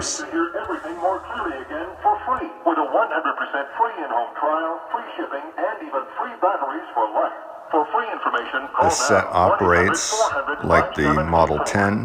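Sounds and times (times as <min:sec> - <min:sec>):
thin radio voice talking: 0:00.0 - 0:03.7, 0:07.8 - 0:12.0.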